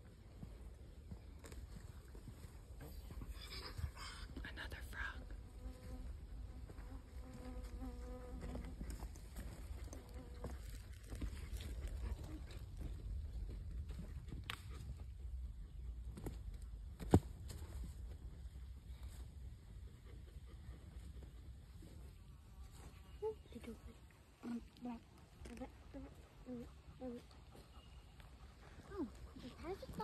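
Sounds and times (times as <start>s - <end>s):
flying insect buzzing: 5.4s - 8.6s.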